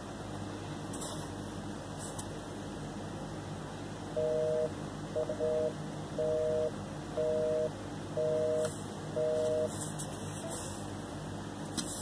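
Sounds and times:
telephone busy signal beeps: 4.2s - 9.7s.

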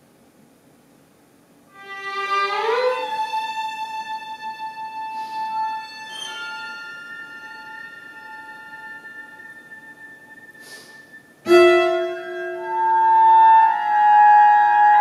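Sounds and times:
chamber ensemble playing: 1.8s - 15.0s.

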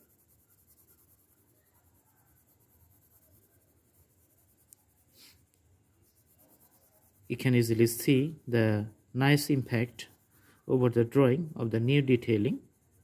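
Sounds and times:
pencil scratching on paper: 0.0s - 13.0s.

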